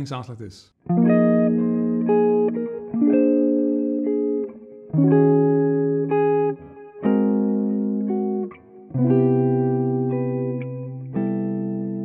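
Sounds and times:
electric guitar chords ringing: 0:00.9 - 0:12.0.

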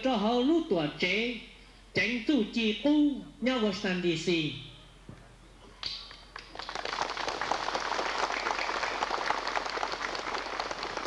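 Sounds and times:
audience clapping: 0:05.9 - 0:11.0.

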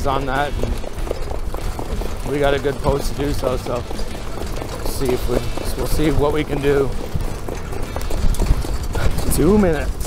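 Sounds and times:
horse hoofbeats on dirt: 0:00.0 - 0:10.0.

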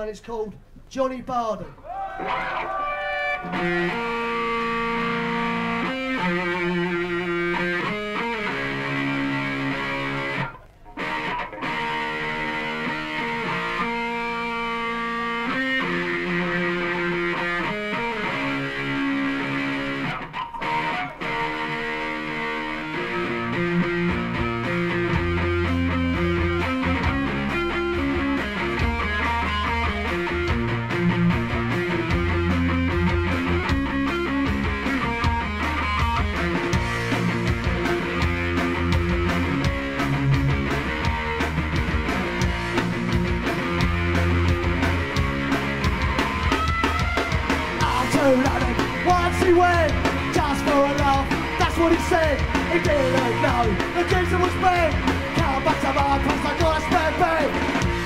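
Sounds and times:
distorted electric guitar riff: 0:02.2 - 0:58.0
punk band playing: 0:02.2 - 0:58.0.

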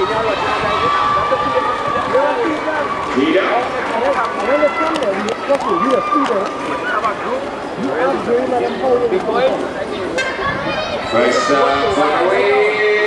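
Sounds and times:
spectators shouting: 0:00.0 - 0:07.5, 0:09.8 - 0:13.0.

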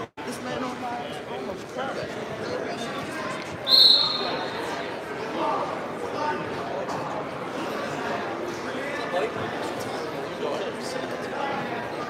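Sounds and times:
murmur of voices: 0:00.0 - 0:12.0
referee's whistle blast: 0:03.7 - 0:04.6.

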